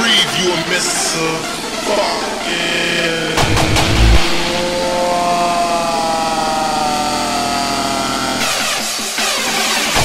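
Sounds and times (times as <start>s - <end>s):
distorted synth chord gliding down: 3.0s - 6.8s
rising noise sweep: 3.2s - 5.8s.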